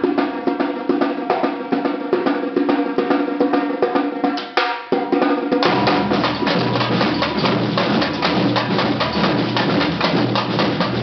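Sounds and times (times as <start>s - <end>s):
percussion band drumming: 0.0s - 11.0s.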